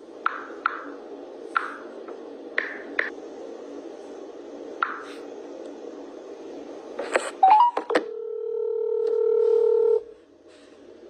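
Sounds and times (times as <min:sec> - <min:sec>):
steady phone tone: 0:07.4 - 0:10.1
phone line click: 0:08.8 - 0:10.0.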